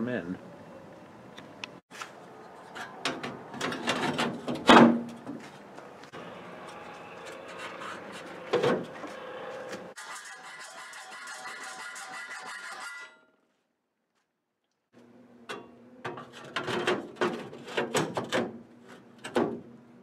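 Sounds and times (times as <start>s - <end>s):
metal panel knocks and clanks: 15.6s - 18.6s.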